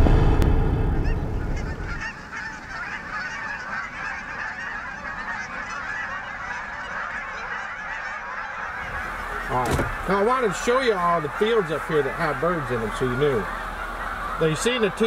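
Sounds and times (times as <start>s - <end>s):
geese honking: 0.9s - 15.0s.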